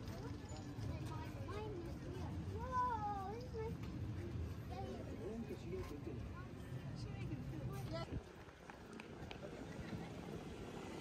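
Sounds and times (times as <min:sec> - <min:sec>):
low rumble of traffic: 0:00.0 - 0:11.0
passersby's voices: 0:00.0 - 0:11.0.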